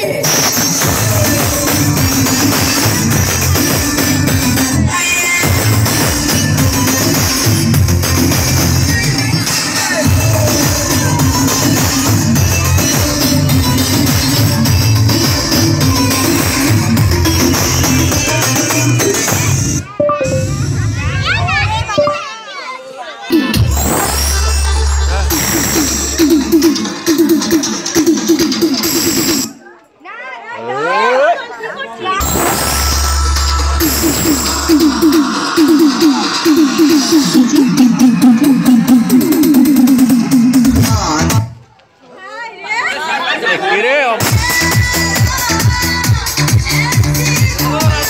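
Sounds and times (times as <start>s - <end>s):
dance music beat: 0.0s - 20.8s, 23.3s - 29.5s, 32.2s - 41.6s, 44.2s - 48.0s.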